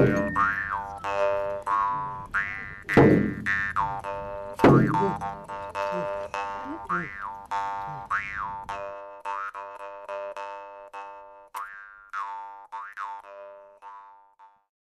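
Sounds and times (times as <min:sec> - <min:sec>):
jaw harp twanging: 0:00.0 - 0:14.0.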